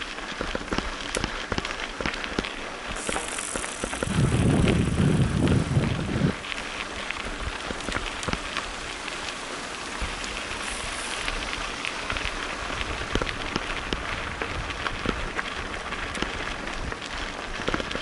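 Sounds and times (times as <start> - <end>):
bike tyres crunching on gravel: 0.0 - 18.0
stones and bike rattling: 0.0 - 18.0.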